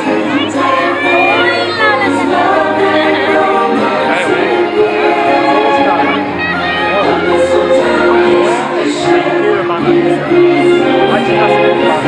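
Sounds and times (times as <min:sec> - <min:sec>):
choir singing: 0:00.0 - 0:12.0
parade music over sound system: 0:00.0 - 0:12.0.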